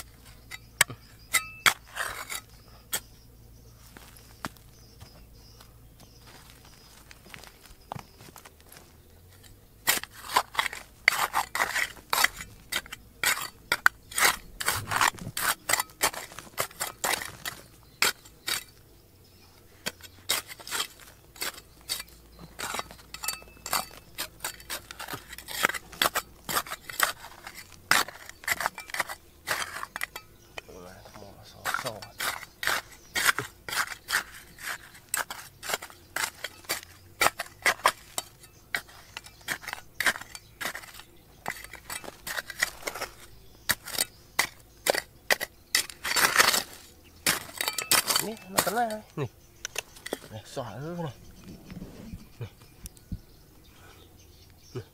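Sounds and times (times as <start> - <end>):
trowel digging in gravelly soil: 0.0 - 3.2, 3.8 - 18.8, 19.8 - 53.0.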